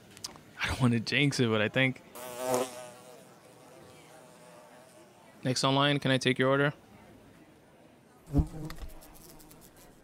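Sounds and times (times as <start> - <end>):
housefly buzzing: 2.2 - 5.3, 8.3 - 10.0.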